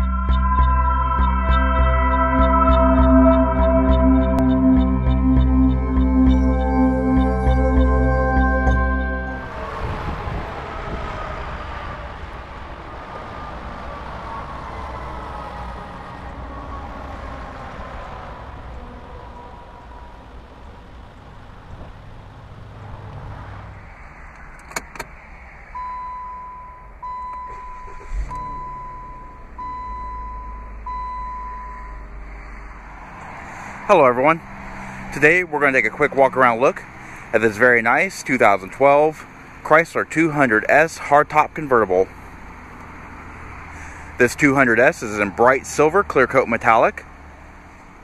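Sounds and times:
beeps: 0.0 - 9.8, 25.8 - 32.1
mechanical whine falling in pitch: 0.0 - 11.5.

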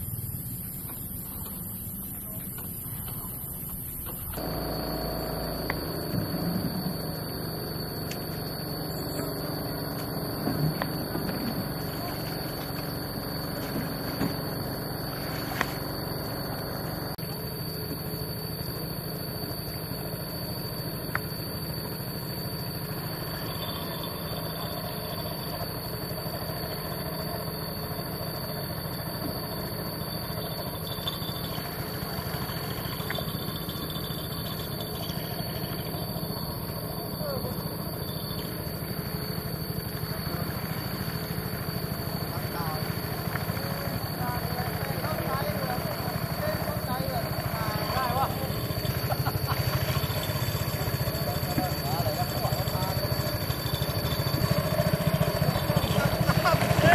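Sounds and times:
boat engine droning: 0.0 - 56.9
high whine: 0.0 - 56.9.

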